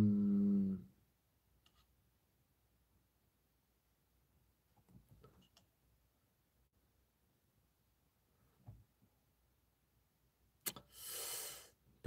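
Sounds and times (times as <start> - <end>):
man humming mmm: 0.0 - 1.0.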